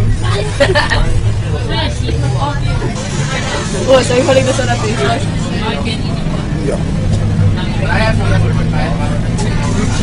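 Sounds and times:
bus engine drone: 0.0 - 10.0.

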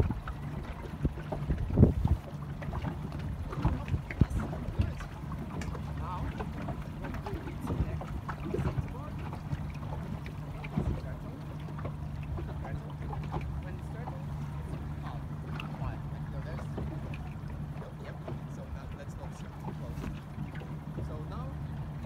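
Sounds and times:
low steady hum: 0.0 - 22.0
water lapping against hull: 0.0 - 22.0
wind buffeting microphone: 0.0 - 22.0.

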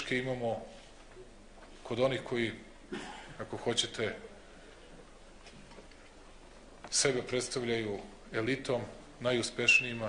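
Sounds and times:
man speaking into microphone: 0.0 - 0.9, 1.8 - 4.5, 6.8 - 10.0.

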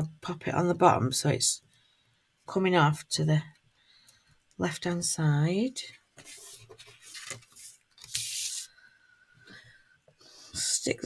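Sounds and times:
paper rustling on wooden table: 6.2 - 8.7.

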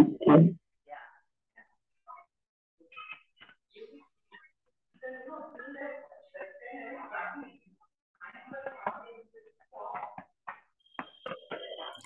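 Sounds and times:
broken-up voice on video call: 0.0 - 0.6
background noise: 0.0 - 12.0.

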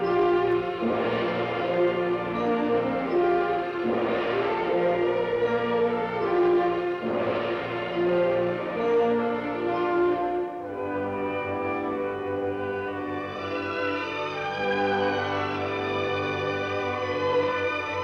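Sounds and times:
orchestral music: 0.0 - 18.0.

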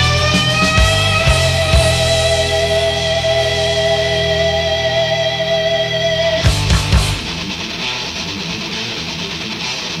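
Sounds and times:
electric guitar riff: 0.0 - 10.0.

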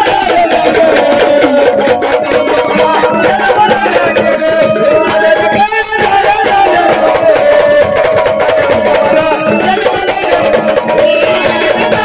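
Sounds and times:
fast drumming: 0.0 - 12.0.

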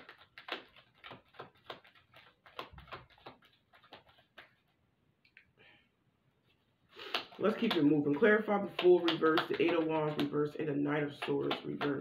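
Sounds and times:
cards shuffled hand to hand: 0.0 - 4.8, 6.9 - 12.0.

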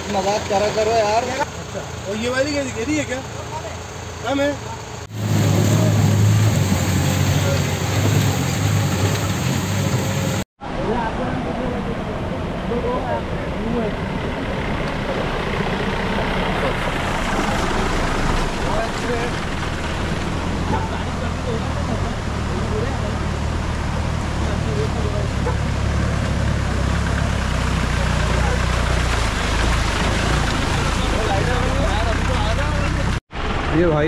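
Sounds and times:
low engine hum: 0.0 - 34.0
rushing water of stream: 0.0 - 34.0.

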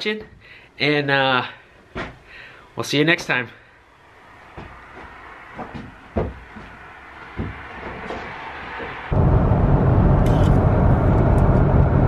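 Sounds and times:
scattered knocks and bumps: 1.9 - 2.2, 4.5 - 9.1.

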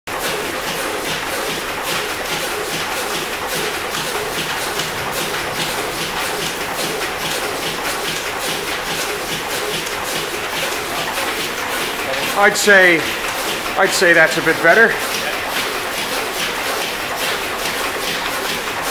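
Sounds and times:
steam engine running: 0.1 - 18.9.

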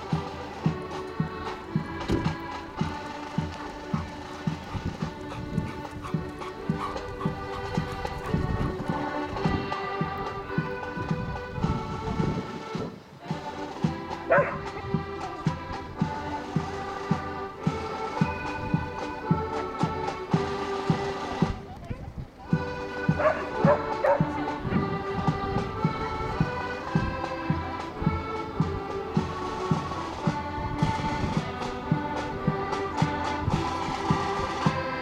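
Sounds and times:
accordion band marching music: 0.0 - 35.0
drum beats: 0.0 - 35.0
dog barking: 14.3 - 14.7, 23.2 - 24.3.

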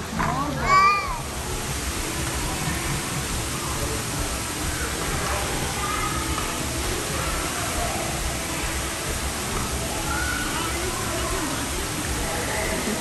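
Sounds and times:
faint distant voices: 0.0 - 13.0
running water echoing: 0.0 - 13.0.

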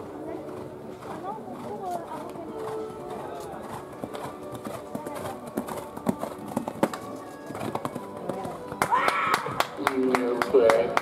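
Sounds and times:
horse hoofbeats on sand: 0.0 - 9.0.

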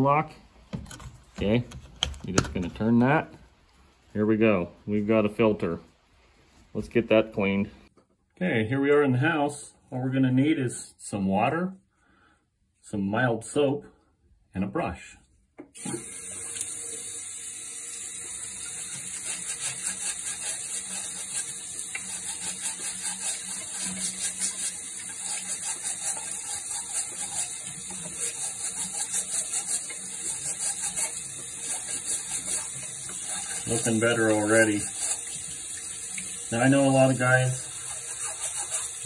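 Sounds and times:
water running from a tap: 15.8 - 39.0.

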